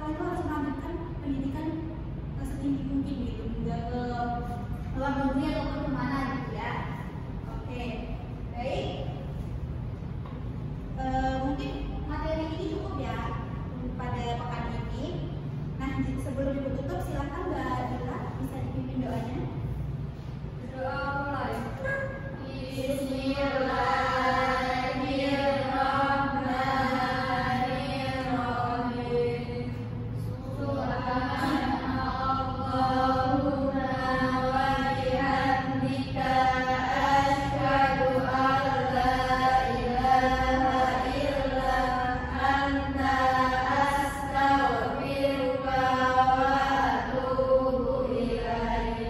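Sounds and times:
person chanting: 21.8 - 29.7, 30.4 - 49.0.

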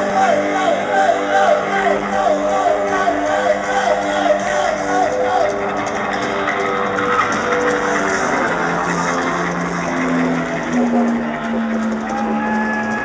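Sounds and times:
crowd noise: 0.0 - 13.0
heavy metal band playing loud: 0.0 - 13.0.

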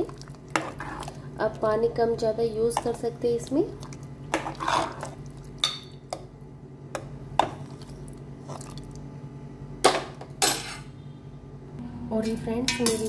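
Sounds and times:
ladle scraping metal pot: 4.3 - 5.2
low hum: 11.0 - 12.8.

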